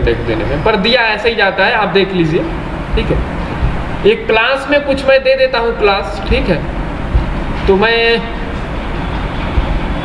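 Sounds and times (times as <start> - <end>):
man speaking: 0.0 - 3.4, 4.0 - 6.8, 7.6 - 8.4
faint low thumps: 0.0 - 10.0.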